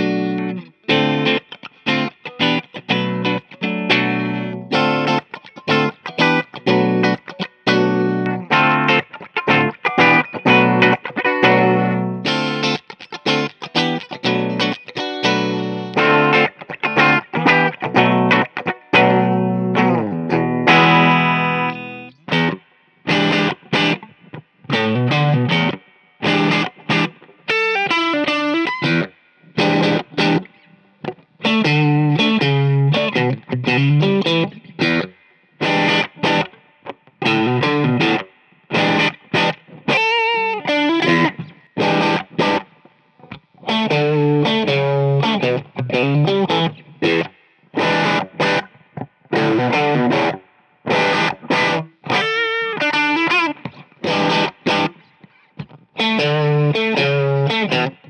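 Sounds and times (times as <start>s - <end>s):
electric guitar playing: 0.0s - 58.0s.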